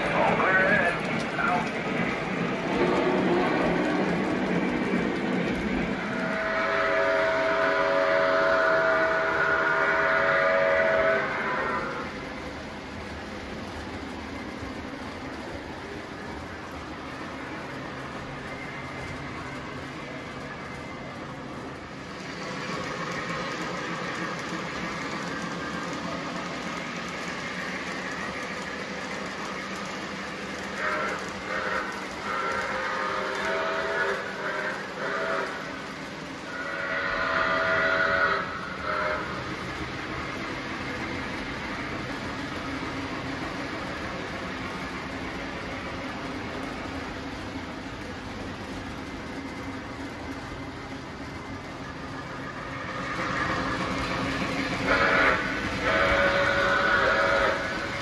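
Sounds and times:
model train rumbling on track: 0.0 - 58.0
train whistle blasts: 6.1 - 12.0, 30.7 - 35.7, 36.5 - 39.4, 54.8 - 57.8.

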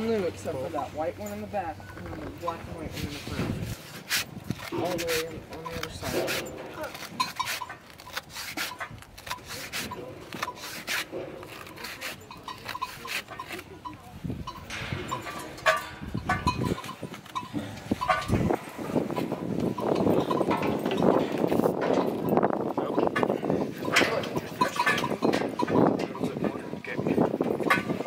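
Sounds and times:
voices: 0.0 - 3.8, 9.4 - 28.0
knocks clanks and rattles of chute: 0.0 - 28.0.

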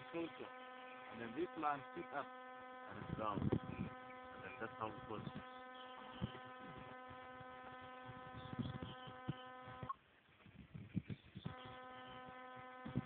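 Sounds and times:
steady buzz: 0.0 - 10.0, 10.6 - 13.0.

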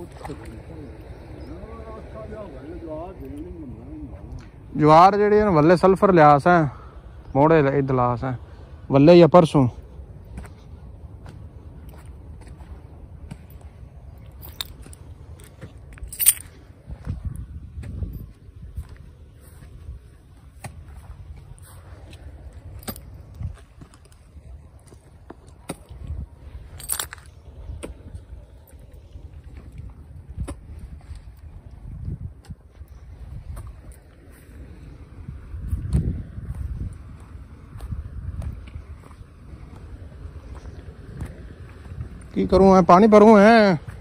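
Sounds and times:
low steady rumble: 0.0 - 44.0
wind buffeting microphone: 9.4 - 44.0.

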